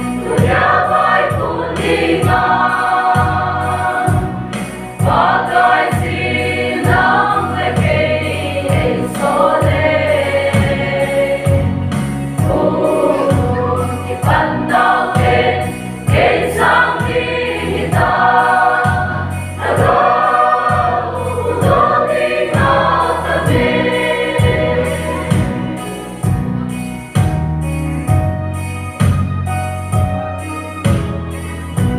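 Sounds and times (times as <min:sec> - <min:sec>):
mixed choir singing gospel: 0:00.0 - 0:26.4
steady bass accompaniment: 0:00.0 - 0:31.9.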